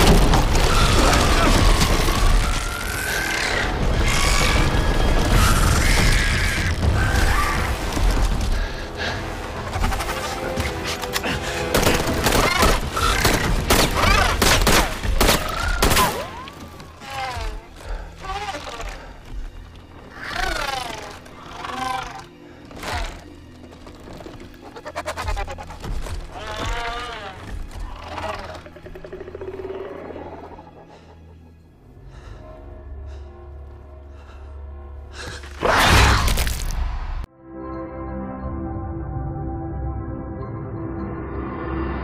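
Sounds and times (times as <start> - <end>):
orchestral film score: 0.0 - 42.0
warbling gliding creature calls: 20.1 - 22.3.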